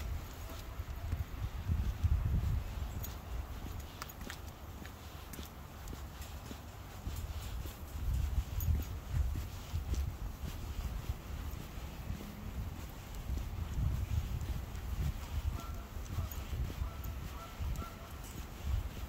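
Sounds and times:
footsteps on concrete: 0.0 - 19.0.

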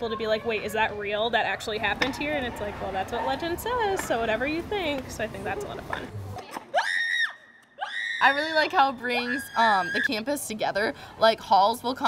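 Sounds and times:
high-pitched screams: 6.7 - 10.2.

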